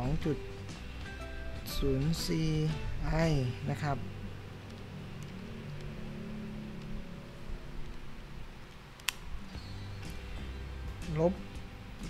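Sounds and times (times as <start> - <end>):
low steady hum: 0.0 - 12.0
soft clicks: 4.6 - 6.0, 6.7 - 7.0, 8.6 - 9.2.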